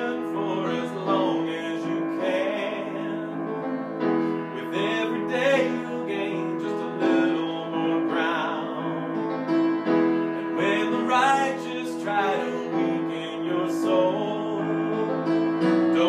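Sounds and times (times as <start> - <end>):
man singing pop ballad: 0.0 - 9.2, 10.3 - 16.0
piano chords: 0.0 - 16.0.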